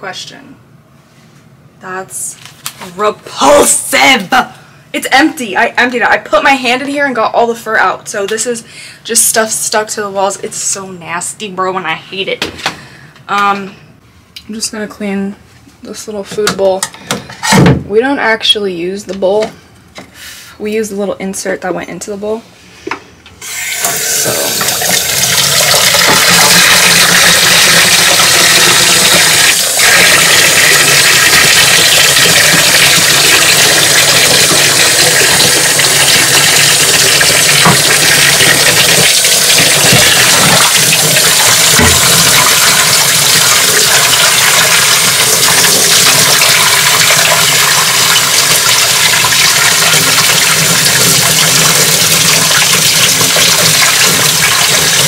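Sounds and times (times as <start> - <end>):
tap running into sink: 23.6 - 55.0.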